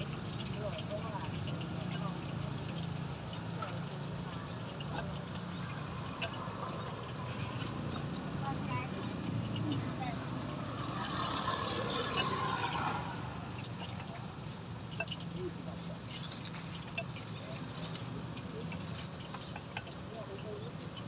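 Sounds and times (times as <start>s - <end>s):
rustling: 15.9s - 19.6s.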